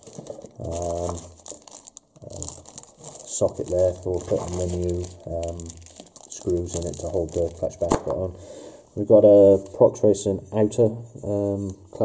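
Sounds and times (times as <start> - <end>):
plastic bag crinkling: 0.0 - 8.1.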